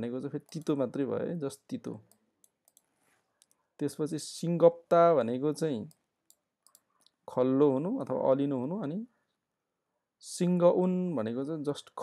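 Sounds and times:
man speaking: 0:00.0 - 0:02.1, 0:03.8 - 0:06.0, 0:07.3 - 0:09.1, 0:10.2 - 0:12.0
faint short clicks: 0:05.9 - 0:07.2.

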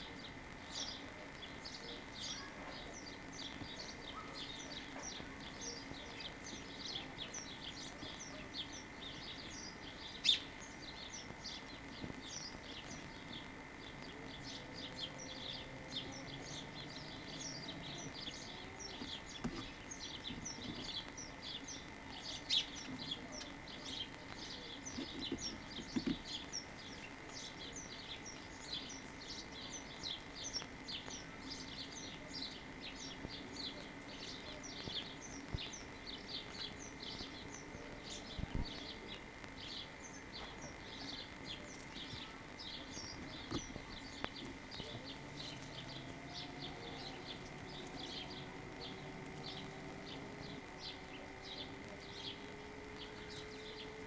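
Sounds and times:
faint steady high tone: 0:00.0 - 0:54.0
small birds chirping: 0:00.0 - 0:54.0.

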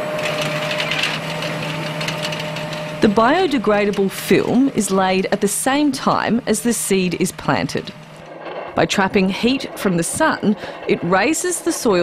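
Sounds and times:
tractor engine hum: 0:00.0 - 0:12.0
rattly hissing planter noise: 0:00.2 - 0:12.0.

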